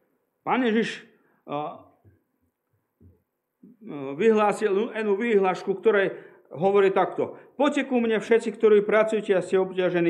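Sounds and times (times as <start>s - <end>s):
man speaking over microphone: 3.8s - 10.0s.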